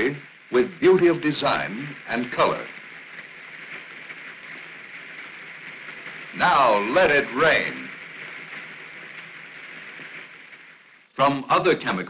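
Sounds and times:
rain falling: 0.0s - 12.0s.

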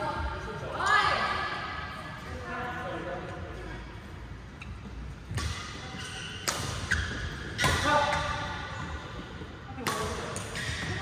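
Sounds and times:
racket hitting shuttlecock: 5.3s - 8.4s, 9.8s - 11.0s.

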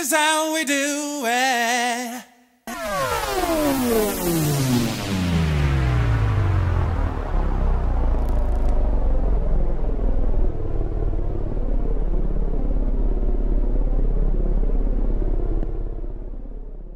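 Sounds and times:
deep rumbling drone: 2.7s - 16.9s.

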